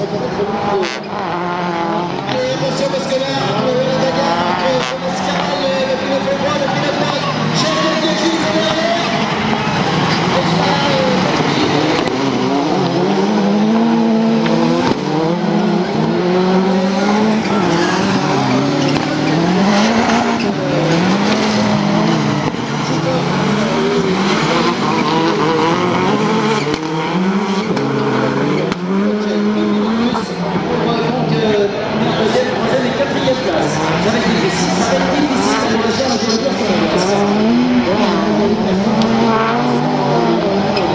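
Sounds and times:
racing car engines revving: 0.0s - 40.9s.

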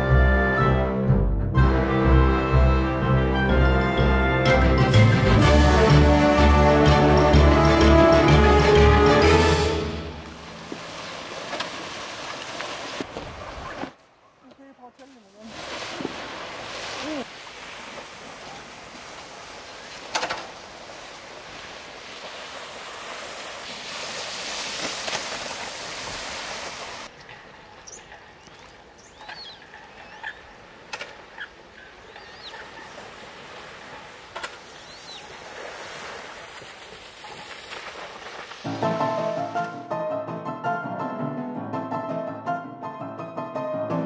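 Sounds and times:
lake water: 0.0s - 39.9s
wind: 0.0s - 40.0s
waterbirds chirping: 10.0s - 39.6s.

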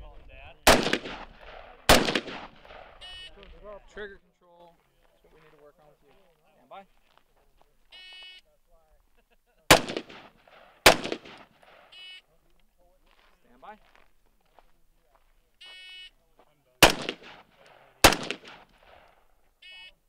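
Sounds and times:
rifle shots with echo: 0.6s - 3.1s, 9.7s - 11.9s, 16.8s - 19.3s
shot timer beeps: 11.9s - 12.3s, 15.6s - 16.1s.

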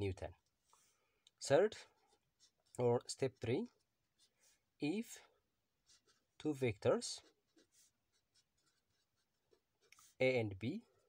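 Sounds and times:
pen scratching on paper: 0.4s - 11.0s.

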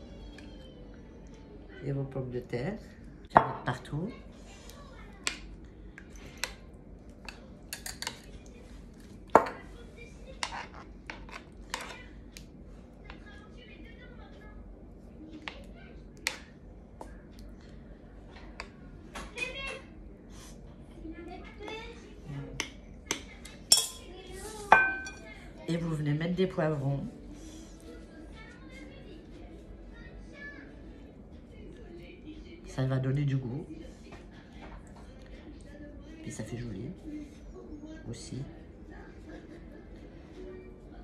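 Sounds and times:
spoon clinking against pan: 22.6s - 24.1s.

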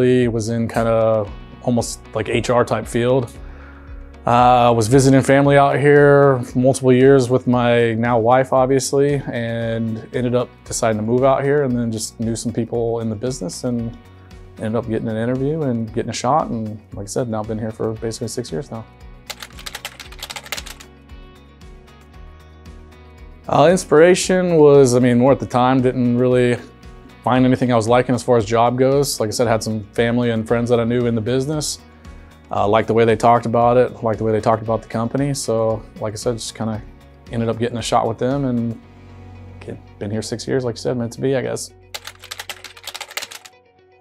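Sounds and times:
background music: 0.0s - 44.0s
keyboard typing clicks: 19.3s - 20.8s, 42.0s - 43.5s.

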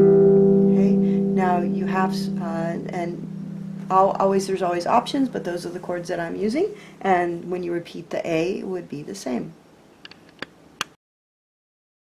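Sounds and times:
harp chord ringing: 0.0s - 6.9s
person talking: 0.7s - 9.6s.

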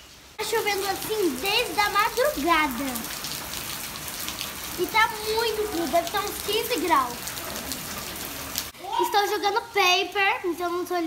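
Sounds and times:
rain on gravel and paving: 0.0s - 11.0s.

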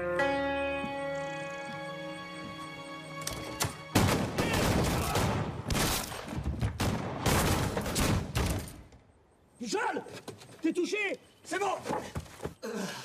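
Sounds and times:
held musical chord: 0.0s - 3.9s
heavy gunfire volley: 4.0s - 8.4s.

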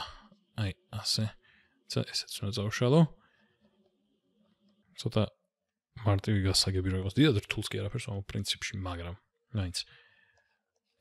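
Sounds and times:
man speaking: 0.0s - 3.2s, 5.0s - 5.3s, 6.0s - 9.9s.

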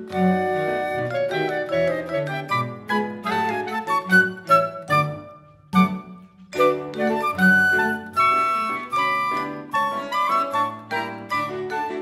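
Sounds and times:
cello: 0.0s - 12.0s
clarinet: 0.0s - 12.0s
flute: 0.0s - 12.0s
piano: 0.0s - 12.0s
vibraphone: 0.0s - 12.0s.

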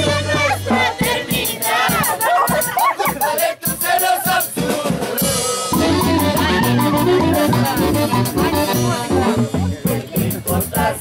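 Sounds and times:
live band with saxophones and drums: 0.0s - 11.0s.

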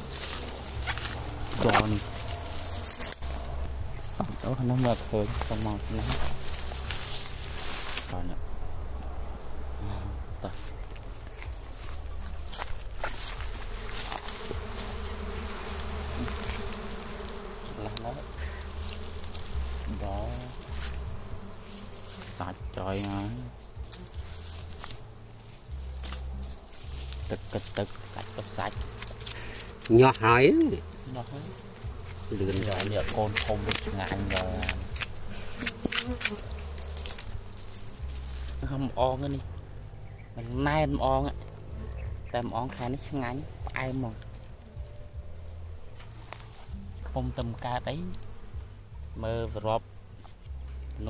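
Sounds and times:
bees buzzing: 0.0s - 51.0s.

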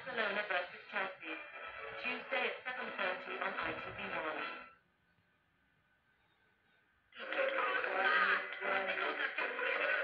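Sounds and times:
music through small speaker: 0.0s - 4.8s, 7.2s - 10.0s
voices through small speaker: 0.0s - 4.8s, 7.2s - 10.0s.

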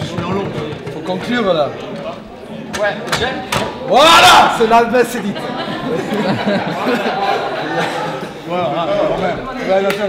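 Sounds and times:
table football knocks: 0.0s - 1.4s.

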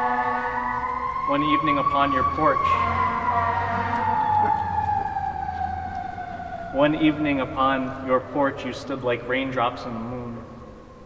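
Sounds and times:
siren wailing: 0.0s - 11.0s.

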